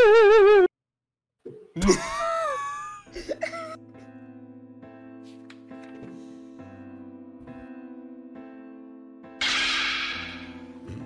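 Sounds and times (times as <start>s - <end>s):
soft background music: 1.6s - 11.0s
person laughing: 1.8s - 3.8s.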